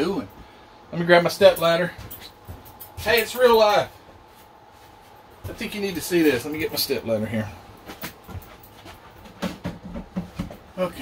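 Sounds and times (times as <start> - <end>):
step ladder knocks and bumps: 9.2 - 10.8.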